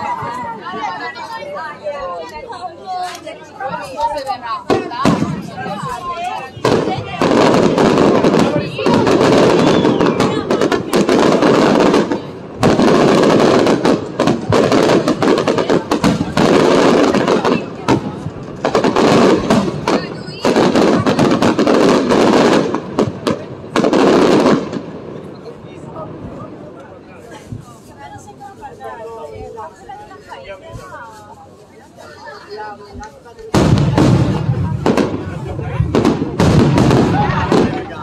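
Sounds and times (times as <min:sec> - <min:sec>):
fireworks exploding and crackling: 0:00.0 - 0:38.0.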